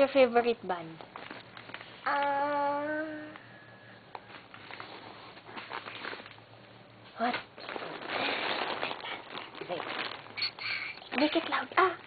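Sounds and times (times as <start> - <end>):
rustling and handling noises: 0.9 - 2.0, 4.1 - 12.0.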